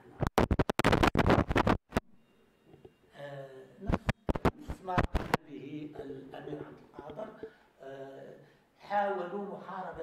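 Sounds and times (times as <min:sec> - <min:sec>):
microphone handling scratches: 0:00.0 - 0:02.1, 0:03.9 - 0:05.4.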